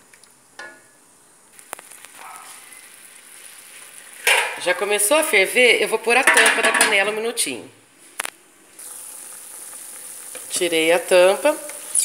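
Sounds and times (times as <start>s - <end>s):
high-pitched sizzle in a pot: 1.5s - 6.4s, 8.2s - 12.0s.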